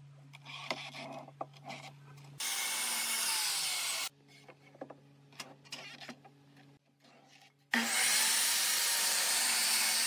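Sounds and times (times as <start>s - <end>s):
miter saw cutting wood: 7.7s - 10.0s.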